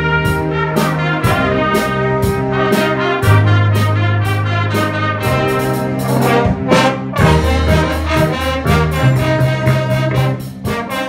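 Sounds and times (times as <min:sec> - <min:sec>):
big band brass chords: 0:00.0 - 0:11.0
steady drum beat: 0:00.0 - 0:11.0.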